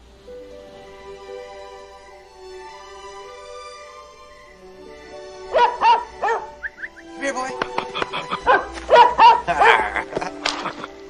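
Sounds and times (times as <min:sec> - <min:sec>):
background music: 0:00.0 - 0:11.0
cartoon dog barking: 0:05.5 - 0:06.6, 0:07.9 - 0:10.1.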